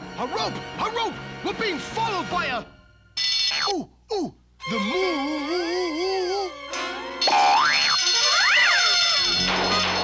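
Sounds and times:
music: 0.0s - 3.2s, 4.6s - 10.0s
swooping cartoon tones: 7.2s - 10.0s.

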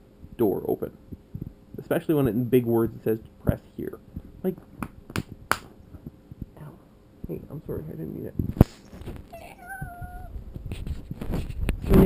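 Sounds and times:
cat meowing: 9.3s - 10.4s.

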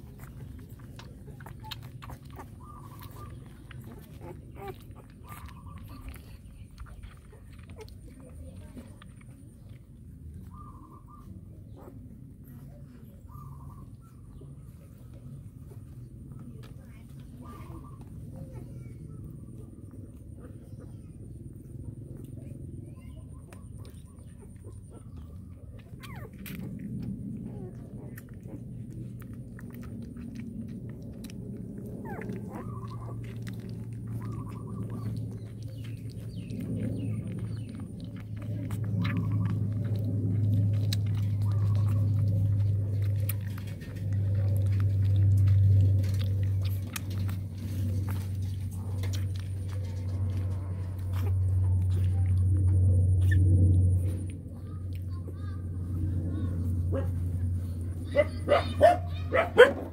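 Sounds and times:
puppy high chirps: 0.0s - 7.9s, 22.9s - 26.8s, 32.0s - 43.5s, 53.2s - 53.5s, 58.0s - 59.9s
puppies suckling wet clicks: 0.0s - 59.9s
steady low hum: 0.0s - 59.9s.

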